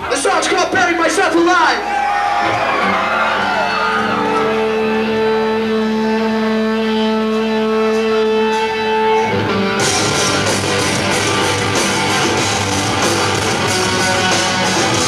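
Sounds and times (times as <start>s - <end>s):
rock band playing: 0.0s - 15.0s.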